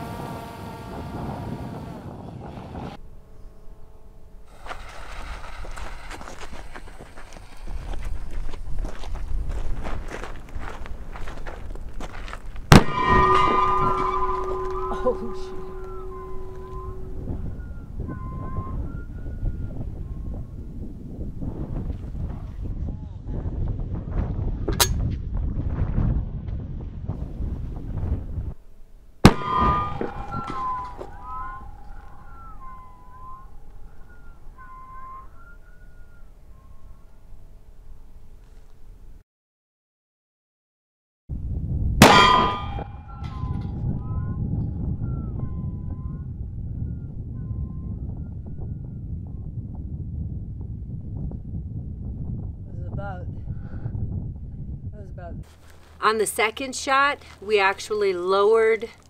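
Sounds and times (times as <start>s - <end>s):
wind noise: 0.0s - 3.7s, 4.5s - 39.2s, 41.3s - 58.9s
cannon firing with loud boom: 12.7s - 17.0s, 29.2s - 32.4s, 42.0s - 43.6s.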